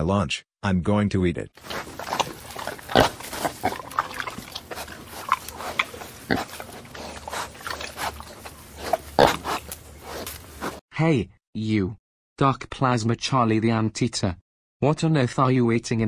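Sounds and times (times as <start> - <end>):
cartoon chomping and slurping: 1.6 - 10.8
pig-like grunting: 1.6 - 10.8.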